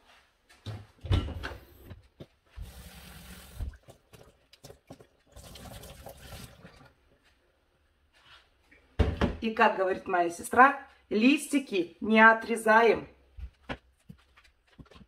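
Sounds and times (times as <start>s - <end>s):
water running from a tap: 2.6s - 6.9s.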